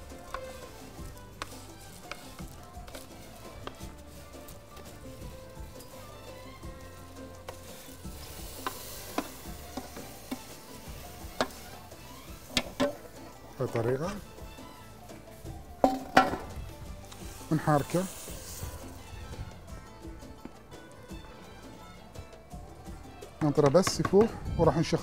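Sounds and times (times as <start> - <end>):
light sizzle: 0.0 - 19.8.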